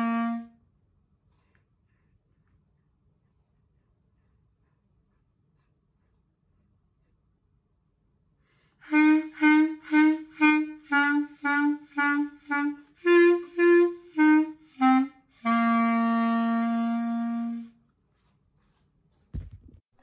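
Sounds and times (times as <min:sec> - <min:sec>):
solo clarinet melody: 0:00.0 - 0:00.6, 0:08.8 - 0:17.8.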